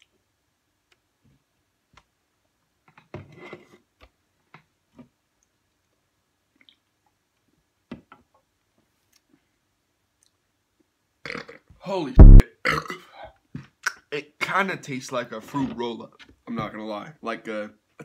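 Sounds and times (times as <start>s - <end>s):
person speaking: 12.2s - 12.4s
throat sound: 12.2s - 12.9s.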